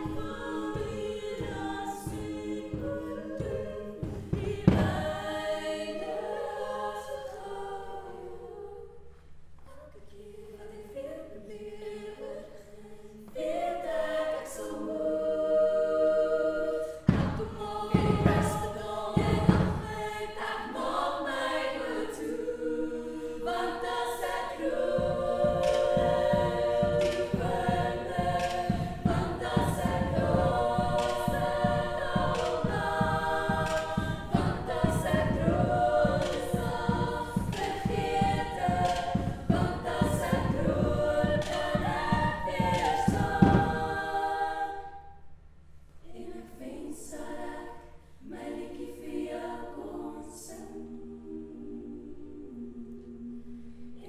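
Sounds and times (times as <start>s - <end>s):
heavy low beats: 0.0s - 5.5s, 17.0s - 20.2s, 24.2s - 44.1s
women singing a cappella: 0.0s - 45.3s, 46.0s - 54.0s
low pulsing beat: 24.8s - 44.0s.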